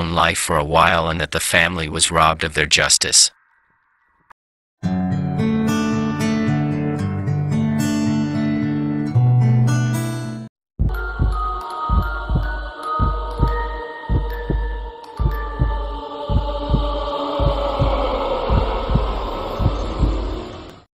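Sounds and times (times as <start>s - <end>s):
heartbeat double thump: 10.8s - 20.8s
hum: 10.8s - 20.9s
sustained high synth tones: 11.0s - 20.9s.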